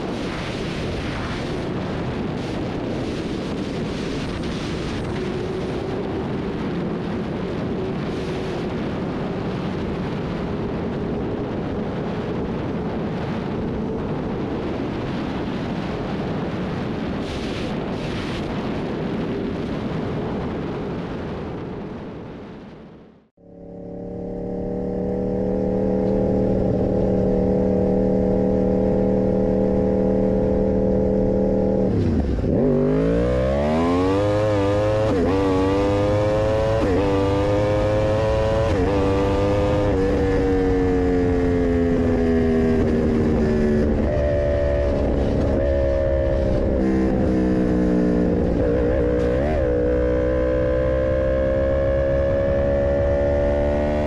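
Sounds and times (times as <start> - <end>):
motorcycle engine revving: 23.4 - 54.0.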